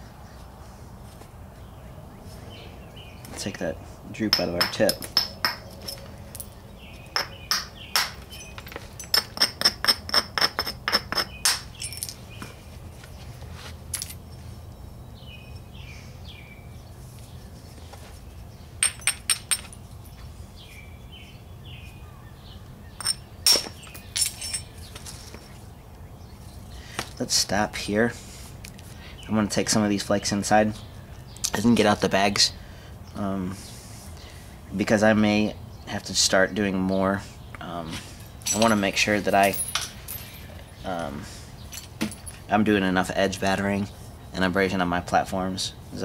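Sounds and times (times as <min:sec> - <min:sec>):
hammerstone striking stone: 0:04.3 - 0:05.7, 0:07.2 - 0:08.2, 0:09.1 - 0:11.6
sharp clinking taps: 0:04.3 - 0:12.2, 0:23.0 - 0:24.6.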